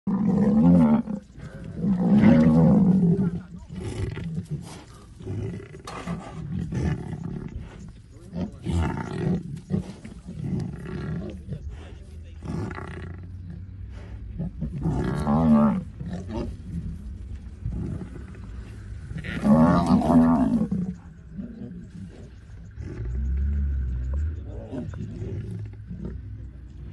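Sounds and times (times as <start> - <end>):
deep lion calls: 0.1 - 26.9.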